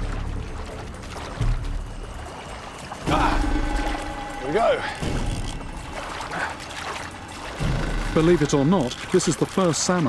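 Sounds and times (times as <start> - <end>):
background music: 0.0 - 10.0
river water rushing and splashing: 0.0 - 10.0.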